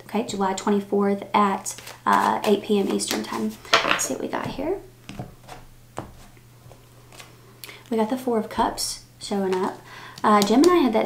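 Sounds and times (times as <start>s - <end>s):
low electrical hum: 0.0s - 11.0s
cards clicking and rustling: 1.7s - 4.1s, 9.4s - 11.0s.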